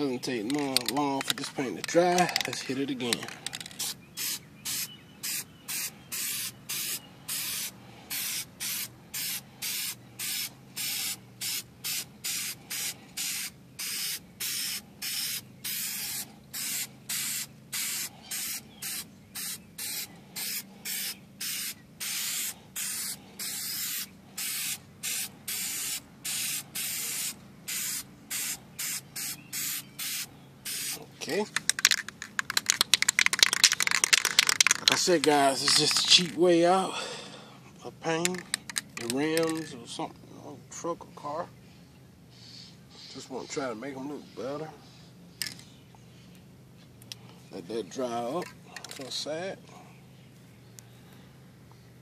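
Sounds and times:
spray can hissing bursts: 0:03.5 - 0:31.0.

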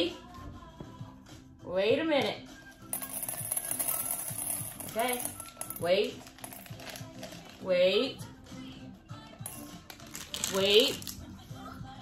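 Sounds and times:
candies rattling into glass bowl: 0:03.0 - 0:07.6, 0:09.5 - 0:11.3.

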